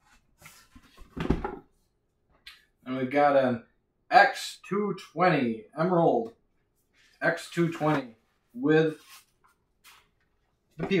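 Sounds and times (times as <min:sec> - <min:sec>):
person speaking: 0:07.1 - 0:09.2, 0:10.8 - 0:11.0.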